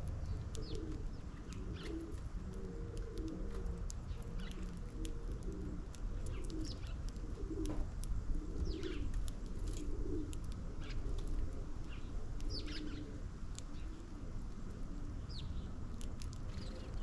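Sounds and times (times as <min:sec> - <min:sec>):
pigeons cooing: 0:00.0 - 0:14.2
small birds chirping: 0:00.0 - 0:17.0.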